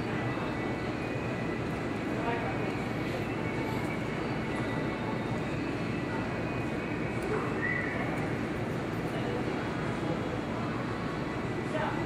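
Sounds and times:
faint voices murmuring: 0.0 - 12.0.

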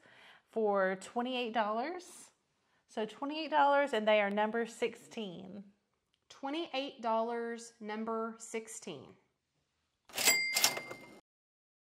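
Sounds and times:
ringing bell tone: 10.2 - 11.2.

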